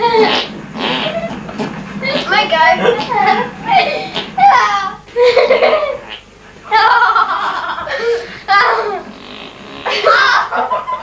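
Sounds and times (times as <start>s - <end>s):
kids squealing laughter: 0.0s - 9.2s, 9.8s - 11.0s.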